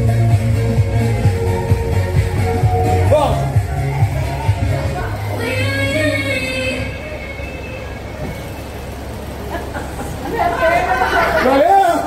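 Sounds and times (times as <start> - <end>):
noisy room rumble: 0.0 - 12.0
people's voices: 1.3 - 12.0.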